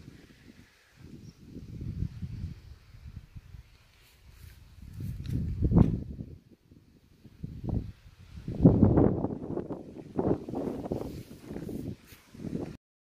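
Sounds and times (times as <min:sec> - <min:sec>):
wind buffeting a microphone: 0:00.0 - 0:12.8.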